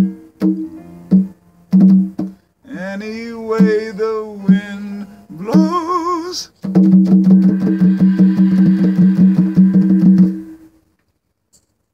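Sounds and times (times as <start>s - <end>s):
guitar chord strummed rapidly: 6.9s - 10.6s.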